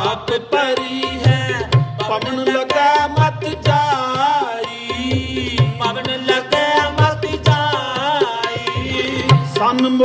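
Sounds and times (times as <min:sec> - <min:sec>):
tabla strokes: 0:00.0 - 0:10.0.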